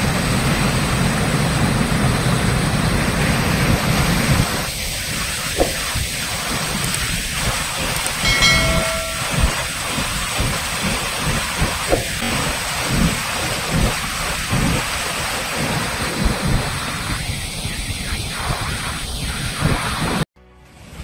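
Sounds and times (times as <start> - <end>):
water pouring into a well: 4.6 - 17.1
short high tone: 8.2 - 10.1.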